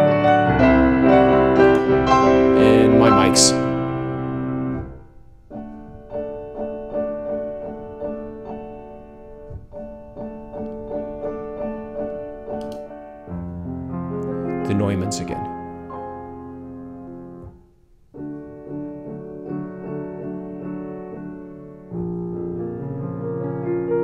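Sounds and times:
piano chords: 0.0s - 24.0s
piano repeated notes: 0.0s - 24.0s.

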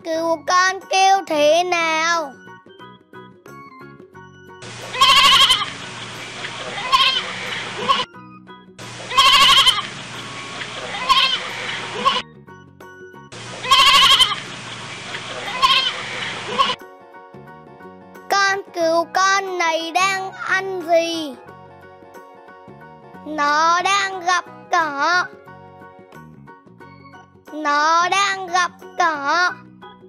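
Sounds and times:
soft background music: 0.0s - 30.0s
lamb bleating: 4.9s - 5.8s, 6.6s - 8.1s, 9.0s - 9.9s, 10.8s - 12.2s, 13.5s - 14.4s, 15.3s - 16.8s.

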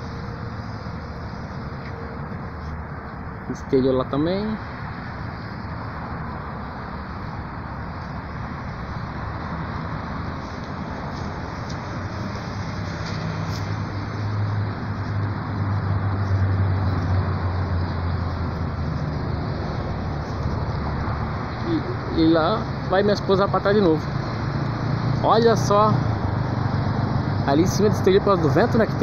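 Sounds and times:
heavy vehicle engine drone: 0.0s - 29.0s
road traffic noise: 0.0s - 29.0s.

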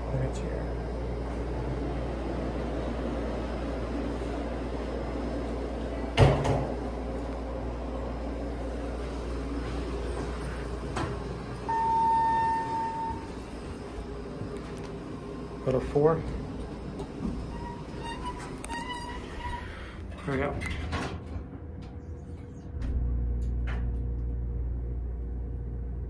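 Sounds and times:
elevator humming: 0.0s - 26.0s
elevator doors sliding: 1.3s - 15.6s, 16.2s - 24.4s
long electronic beep: 11.7s - 13.4s.

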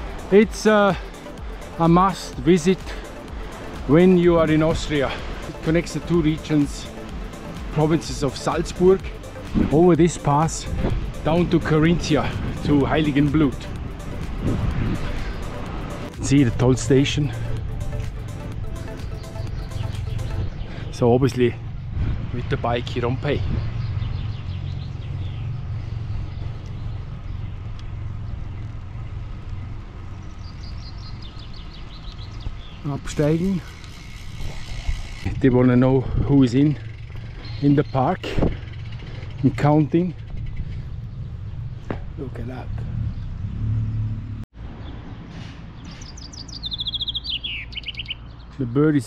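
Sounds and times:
steady low rumble: 0.0s - 22.8s
songbird singing: 0.0s - 49.0s
wind and road noise rumble: 0.0s - 49.0s
bird chirping: 14.8s - 22.0s, 23.3s - 28.8s, 29.5s - 34.0s, 36.8s - 41.9s, 44.8s - 48.7s.

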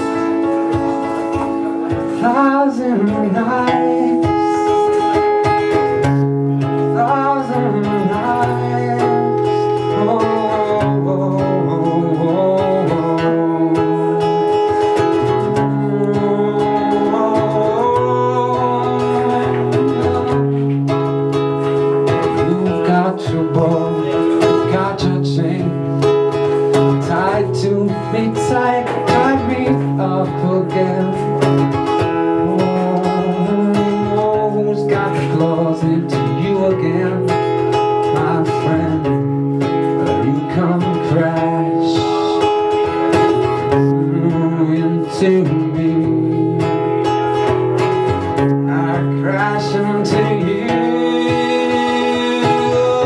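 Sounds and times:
acoustic guitar strumming: 0.0s - 53.0s.

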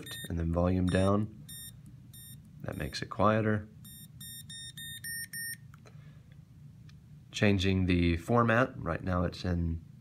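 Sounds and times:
calculator beeping: 0.0s - 3.1s, 3.8s - 5.6s.

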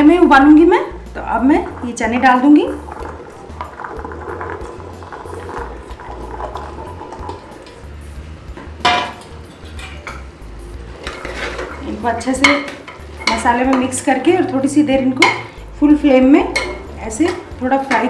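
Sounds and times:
chickpeas scraped into pot: 11.0s - 11.9s
bowl and spoon clinking on pot: 16.5s - 18.0s.

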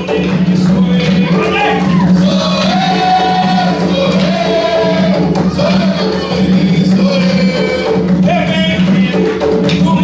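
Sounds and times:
voices singing together: 0.0s - 10.0s.

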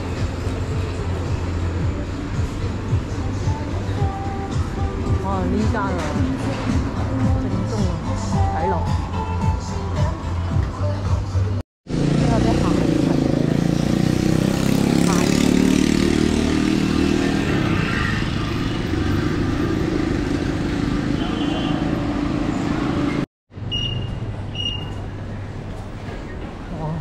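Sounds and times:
motorcycles and scooters passing: 11.9s - 23.2s
people's voices: 12.1s - 13.8s
short high beeps: 23.7s - 25.0s.

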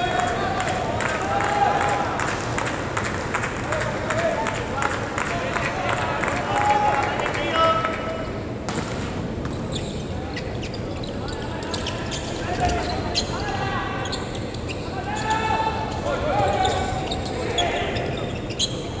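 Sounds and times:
players shouting: 0.0s - 3.0s, 3.6s - 8.0s, 11.2s - 18.5s
volleyball knocking: 8.7s - 9.6s.

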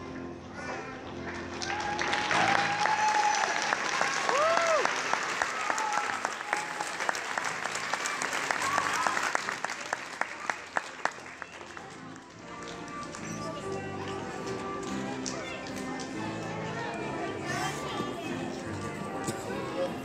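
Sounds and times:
audience applauding: 1.3s - 13.0s.

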